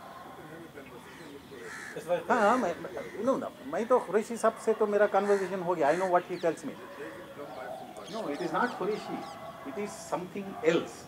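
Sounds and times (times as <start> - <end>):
faint distant speech: 0.0 - 11.0
bird cawing: 1.0 - 4.5, 5.1 - 9.6.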